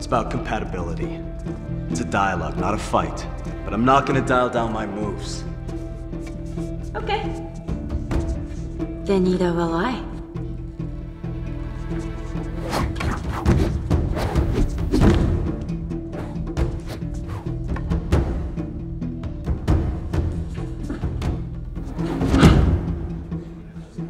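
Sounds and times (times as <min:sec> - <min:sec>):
dramatic orchestral score: 0:00.0 - 0:24.0
timpani drum hits: 0:22.1 - 0:23.4.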